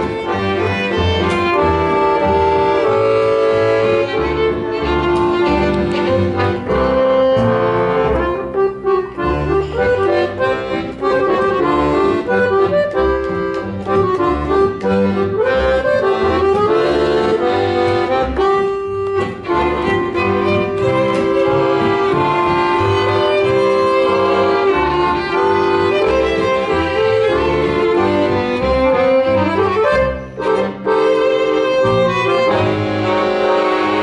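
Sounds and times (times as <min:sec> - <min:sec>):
accordion melody with chords: 0:00.0 - 0:34.0
double bass: 0:00.0 - 0:34.0.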